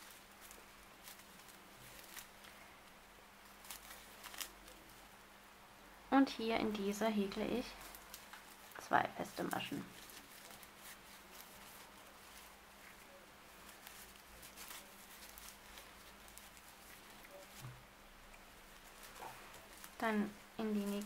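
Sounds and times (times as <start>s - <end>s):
yarn rustling through stitches: 0.0s - 21.0s.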